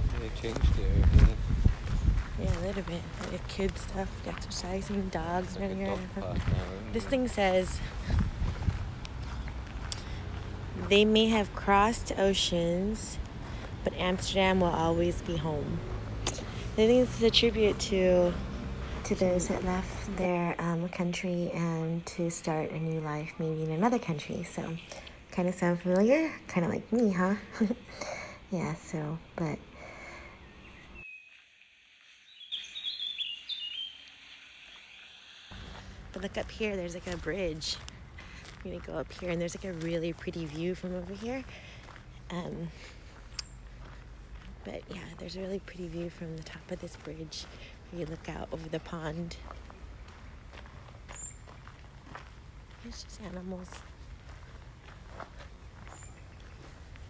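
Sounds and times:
steady low rumble: 0.0s - 17.0s
footsteps on a path: 0.0s - 30.8s, 34.7s - 57.0s
faint outdoor background noise: 0.0s - 57.0s
songbird singing high notes: 30.4s - 35.6s.

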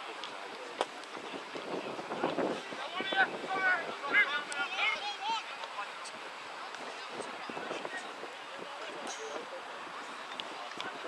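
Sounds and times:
wind on microphone: 0.0s - 4.5s, 6.1s - 11.0s.

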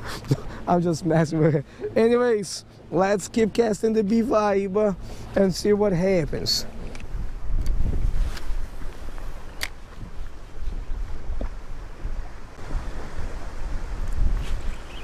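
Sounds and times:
wind buffeting microphone: 4.9s - 15.0s.

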